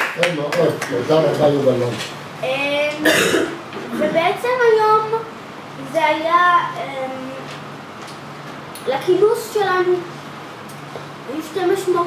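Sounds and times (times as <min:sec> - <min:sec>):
person clearing throat: 0:03.0 - 0:04.2.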